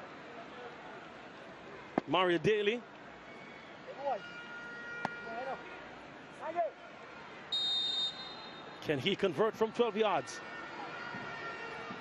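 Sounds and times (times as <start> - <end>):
stadium ambience: 0.0 - 12.0
referee's whistle blast: 7.5 - 8.8.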